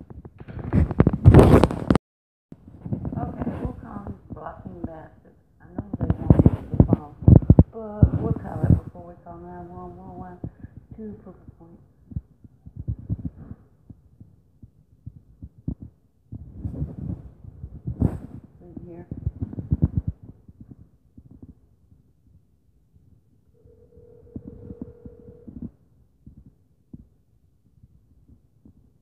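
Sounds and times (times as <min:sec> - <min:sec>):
muffled low thuds and rumbling: 0:02.6 - 0:22.4
phone ringback tone: 0:23.6 - 0:25.6.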